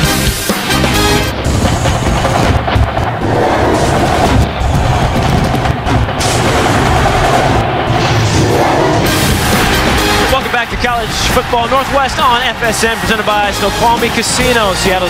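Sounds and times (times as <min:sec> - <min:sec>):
sports broadcast theme music: 0:00.0 - 0:15.0.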